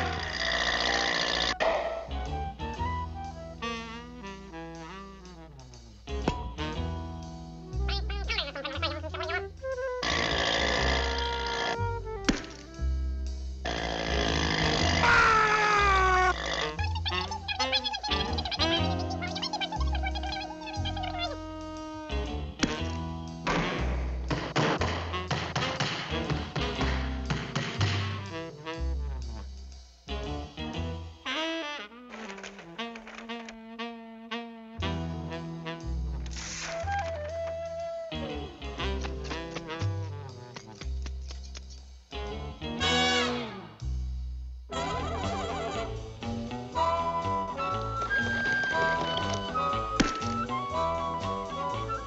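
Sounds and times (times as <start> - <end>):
jazzy background music: 0.0 - 52.0.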